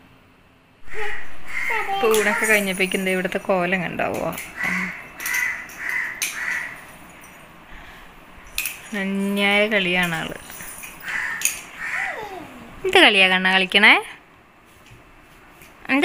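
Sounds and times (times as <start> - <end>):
plastic toys clicking on tiles: 4.1 - 6.7.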